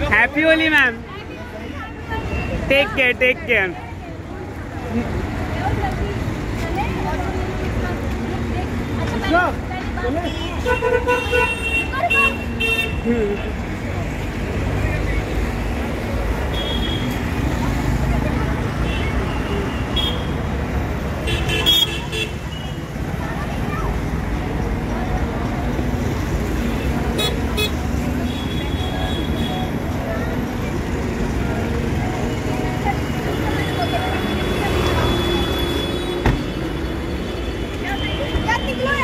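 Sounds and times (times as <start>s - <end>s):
crowd talking: 0.0s - 39.0s
traffic rumble: 0.0s - 39.0s.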